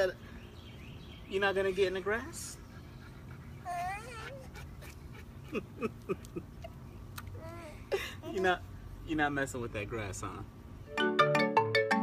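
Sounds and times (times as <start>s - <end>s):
baby whiny fuss: 3.6s - 4.6s, 7.4s - 8.6s.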